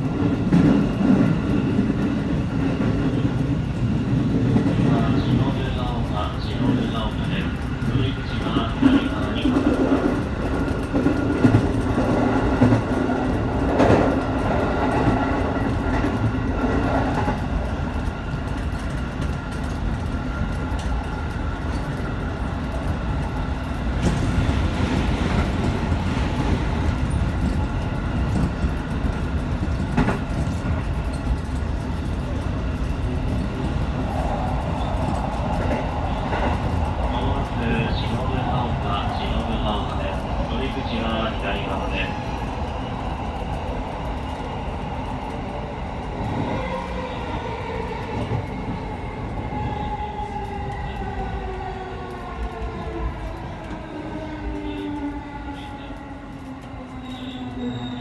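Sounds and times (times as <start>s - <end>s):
oncoming train passing: 0.0s - 58.0s
train wheels rumbling on rail: 0.0s - 58.0s.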